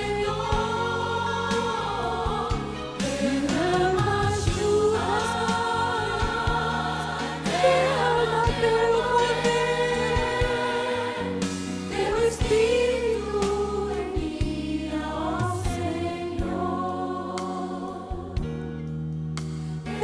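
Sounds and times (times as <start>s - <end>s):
woman and children singing: 0.0s - 18.4s
instrumental accompaniment with bass: 0.0s - 20.0s.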